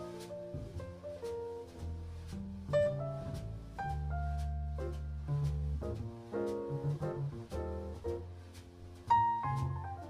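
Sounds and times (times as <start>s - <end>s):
piano notes: 0.0s - 10.0s
plucked double bass: 0.0s - 10.0s.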